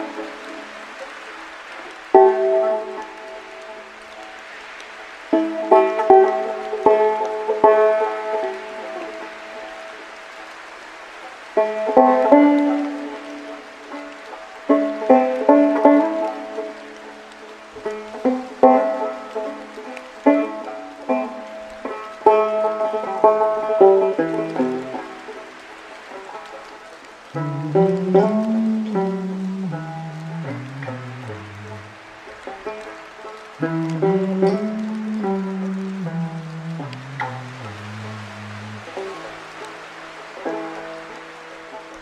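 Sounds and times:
solo banjo plucked slowly: 0:00.0 - 0:42.0.

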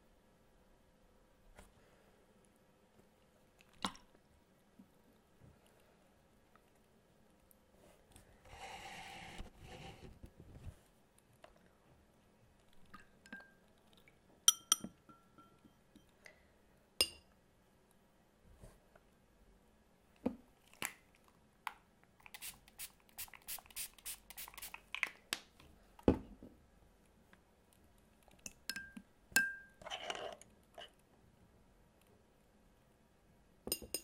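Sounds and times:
clinks and taps on glass and ceramic: 0:13.2 - 0:13.6, 0:14.5 - 0:16.1, 0:17.0 - 0:17.3, 0:28.5 - 0:29.8, 0:33.7 - 0:34.0.

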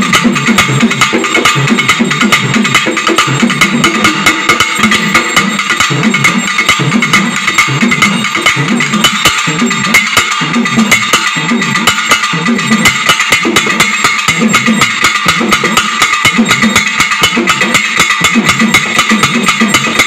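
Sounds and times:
drums in fast rhythm: 0:00.0 - 0:20.0.

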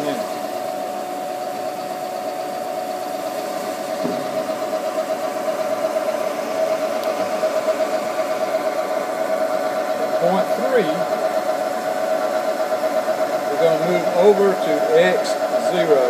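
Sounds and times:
milling machine whining: 0:00.0 - 0:16.0.

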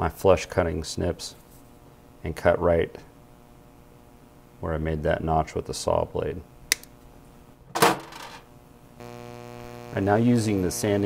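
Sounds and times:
flex shaft motor humming: 0:09.0 - 0:11.0.

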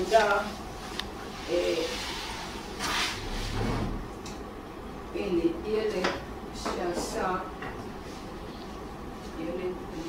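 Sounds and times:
objects scraping on shelf: 0:01.4 - 0:04.0.

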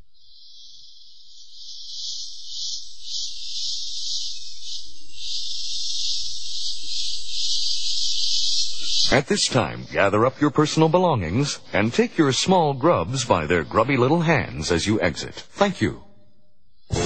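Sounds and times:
insect chirring buzz: 0:00.0 - 0:14.6, 0:16.4 - 0:17.0.

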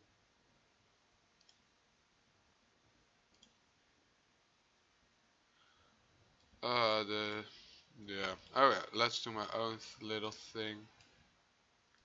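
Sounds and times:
computer mouse clicks: 0:01.4 - 0:01.7, 0:03.3 - 0:03.6.

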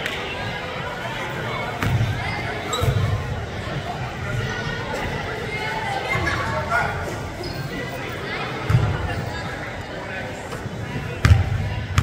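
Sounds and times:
voices in gym: 0:00.0 - 0:12.0.

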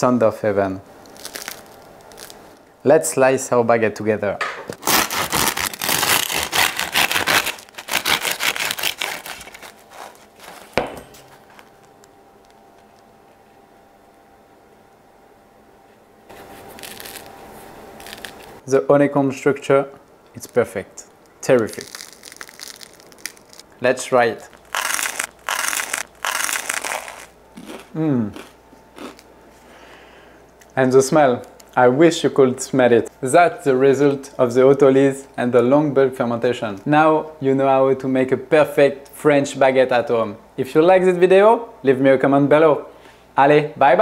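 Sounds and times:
sharp crust crack: 0:01.0 - 0:02.5, 0:04.7 - 0:12.6, 0:18.0 - 0:18.6, 0:21.4 - 0:23.7, 0:24.4 - 0:29.3.

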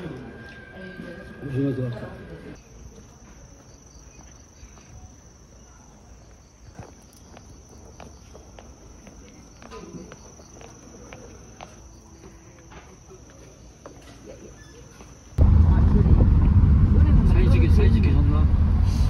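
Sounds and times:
insects chirring: 0:00.0 - 0:15.4
footsteps on steel rail and gravel: 0:06.2 - 0:14.3.

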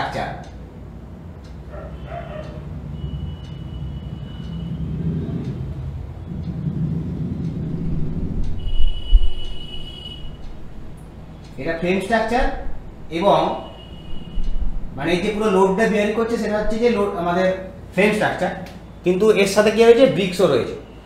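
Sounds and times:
low rumble: 0:04.7 - 0:11.8, 0:13.8 - 0:15.5.

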